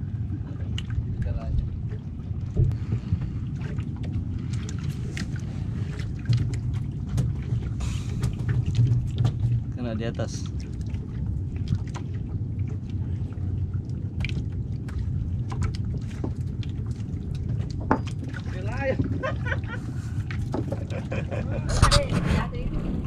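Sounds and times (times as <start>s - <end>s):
low rumble: 0.0s - 23.0s
water sloshing around boat: 0.0s - 23.0s.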